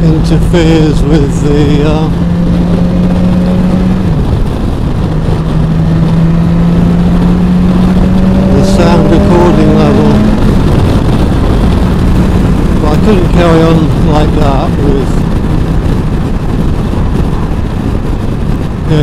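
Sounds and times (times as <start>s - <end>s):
motorcycle engine cruising: 0.0s - 19.0s
wind and road noise: 0.0s - 19.0s.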